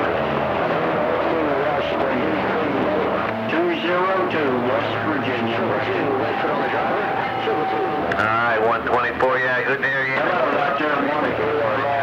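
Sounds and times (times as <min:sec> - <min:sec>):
faint garbled radio voices: 0:00.0 - 0:12.0
radio static: 0:01.3 - 0:12.0.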